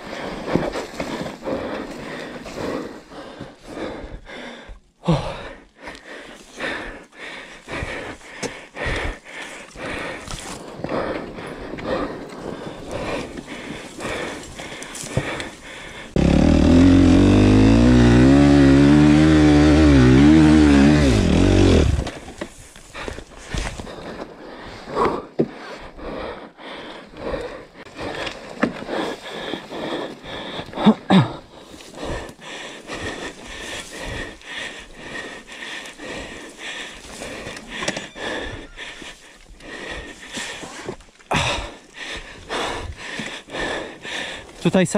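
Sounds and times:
motorcycle engine revving: 16.2 - 22.1.

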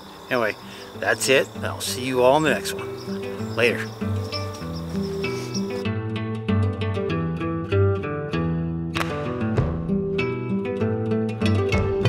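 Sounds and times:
faint insects: 0.0 - 5.8
music of held notes: 1.0 - 5.8.

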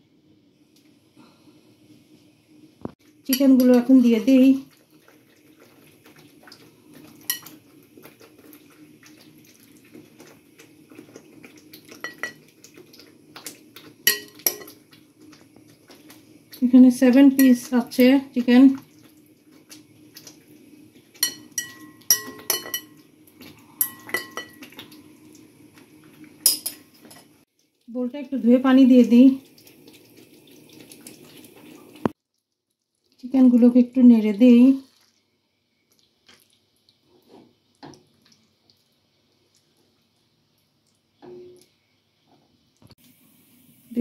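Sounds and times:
low steady hum: 0.0 - 32.1
utensil clinking against bowl and pan: 7.2 - 7.6, 11.9 - 12.4, 14.0 - 14.8, 17.3 - 17.8, 21.2 - 23.0, 23.8 - 25.0, 26.4 - 27.3
ringing clink on glass bowl: 21.2 - 23.0, 23.8 - 24.6.

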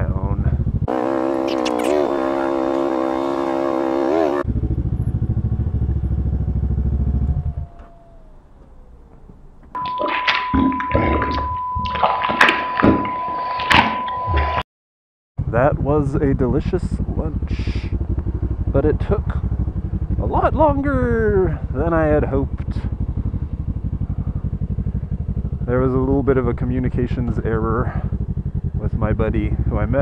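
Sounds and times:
motorcycle engine idling: 0.0 - 9.8, 15.4 - 30.0
steady high beep: 9.8 - 14.6.

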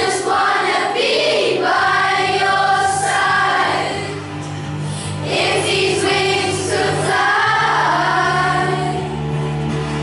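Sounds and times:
children's choir singing: 0.0 - 4.3, 5.1 - 9.4.

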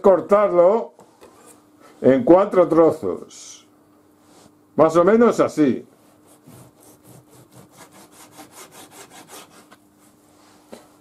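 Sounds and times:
knife sawing through meat: 6.2 - 9.7.

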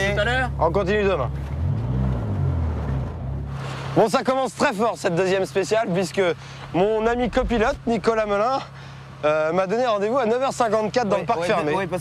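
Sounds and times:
rally car engine running: 6.6 - 8.9.

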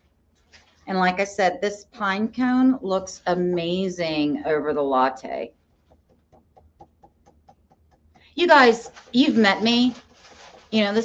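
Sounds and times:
stencil brush tapping: 5.7 - 10.7.

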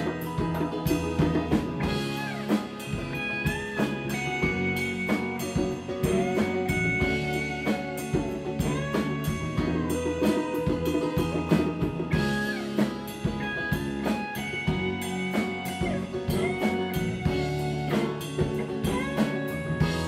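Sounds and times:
drum kit beat: 0.0 - 20.0
electric guitar lead: 0.0 - 20.0
keyboards: 0.0 - 20.0
live rock band playing: 0.0 - 20.0.

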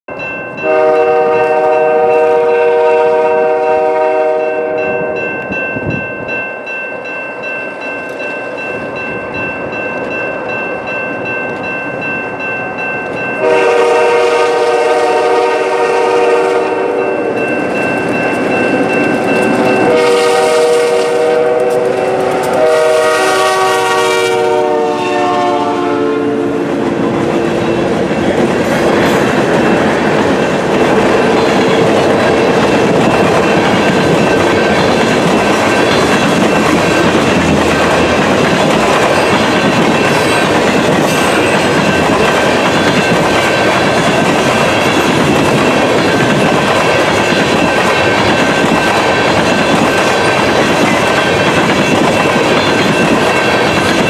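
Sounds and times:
locomotive air horn blasts: 0.6 - 5.1, 13.4 - 17.3, 19.8 - 26.9
train wheels clattering on rails: 7.0 - 54.0.

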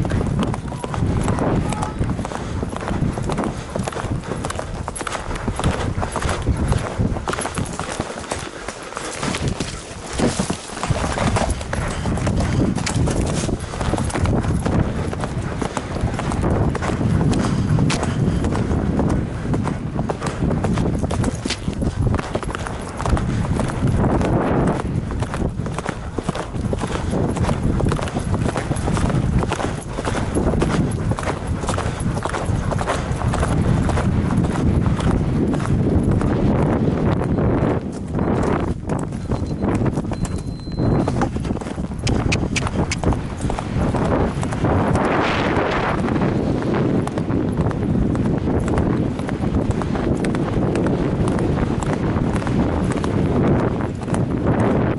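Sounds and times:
horse hooves galloping on turf: 0.0 - 54.9.

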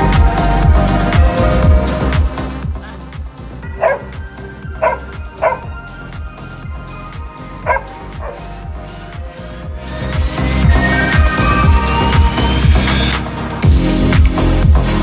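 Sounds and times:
background music with low beat: 0.0 - 15.0
dog yelping: 3.6 - 5.8, 7.6 - 8.5.

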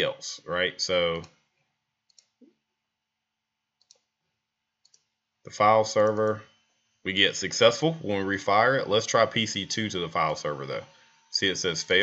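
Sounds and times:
faint computer mouse clicks: 2.1 - 2.5, 3.8 - 4.1, 4.8 - 5.1.

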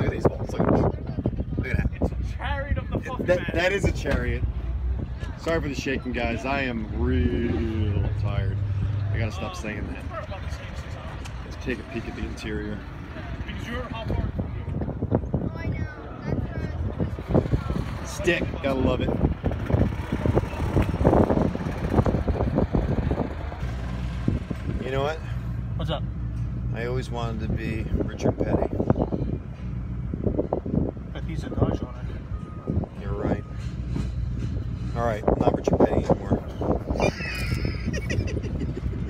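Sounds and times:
car engine and road hum: 0.0 - 39.0
men laughing: 36.8 - 39.0.

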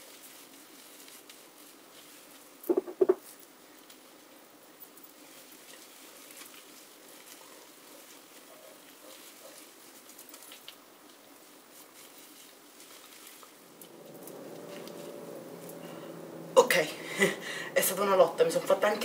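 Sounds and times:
faint steady hum: 13.6 - 19.0.

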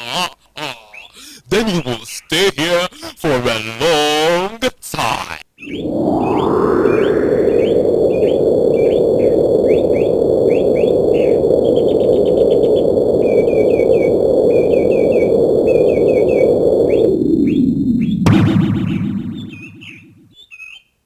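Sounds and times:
loud steady rushing noise: 5.6 - 9.4, 14.5 - 20.2.

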